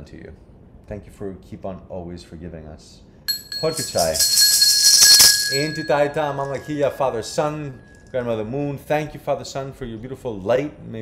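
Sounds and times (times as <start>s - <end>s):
loud shaking jingle: 3.3s - 8.1s
small bell ringing: 3.3s - 8.2s.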